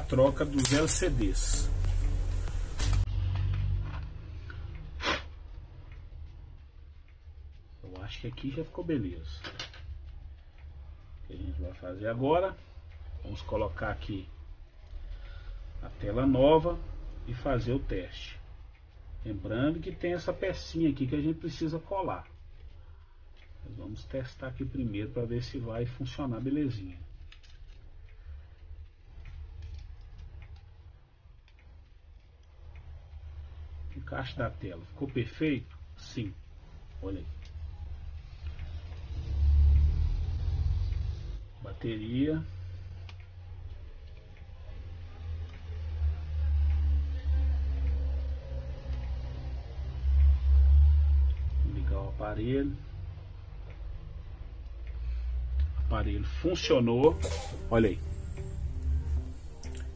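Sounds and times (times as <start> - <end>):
pick tool ticks and scrapes: 0.0 - 3.0
small clicks and taps: 0.0 - 15.7, 19.8 - 55.9
low hum: 0.0 - 59.9.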